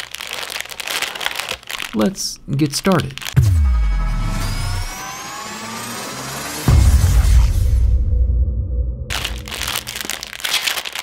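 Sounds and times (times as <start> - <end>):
synthetic riser tones sweeping upward: 3.4 - 10.1
low rumbling boom: 6.4 - 10.4.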